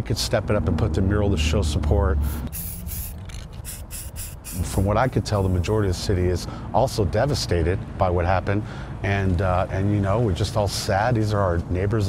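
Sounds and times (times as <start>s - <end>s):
spray-paint can hissing: 2.2s - 5.8s.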